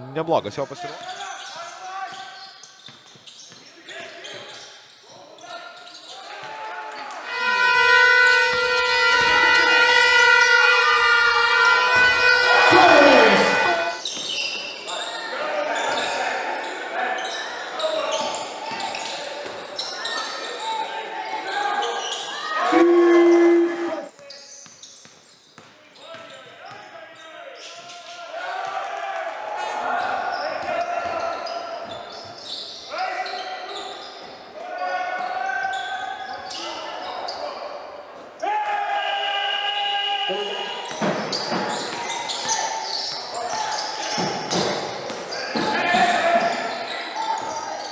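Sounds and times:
voices in a hall: 0:00.0 - 0:25.0, 0:25.7 - 0:47.9
steady held tone: 0:22.7 - 0:24.1.

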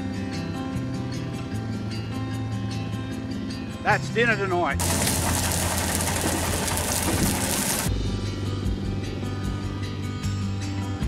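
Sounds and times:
background music: 0:00.0 - 0:11.0
motorcycle engine rumble: 0:04.8 - 0:07.9
wood fire hissing: 0:04.8 - 0:07.9.

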